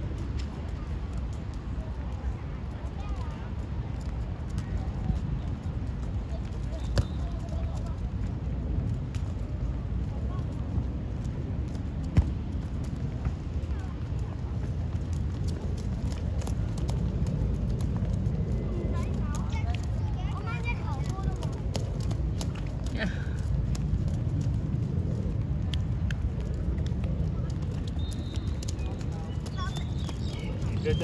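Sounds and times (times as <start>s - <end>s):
steady low rumble: 0.0s - 31.0s
football being kicked: 12.1s - 12.4s.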